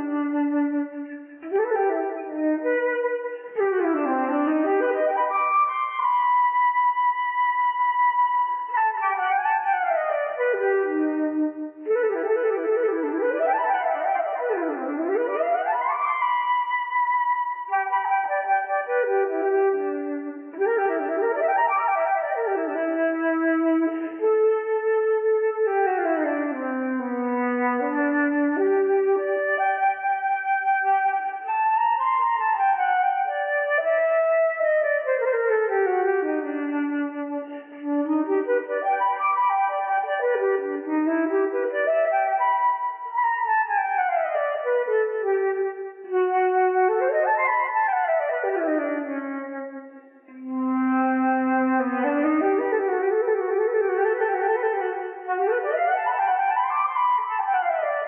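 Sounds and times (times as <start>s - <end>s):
solo flute playing: 0.0s - 58.0s.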